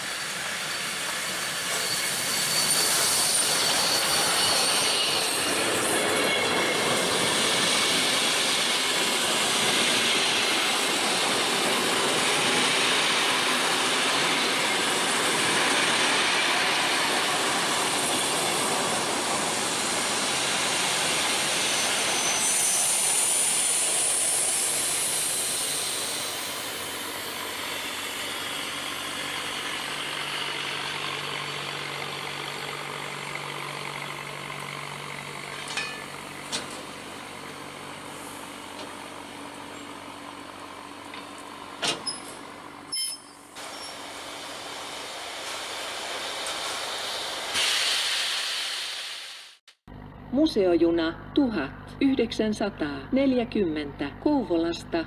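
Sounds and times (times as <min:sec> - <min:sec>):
high-pitched wheel squeals: 0:00.7 - 0:06.8, 0:21.6 - 0:23.6, 0:42.0 - 0:44.0
train wheels clacking over rail joints: 0:35.4 - 0:37.0.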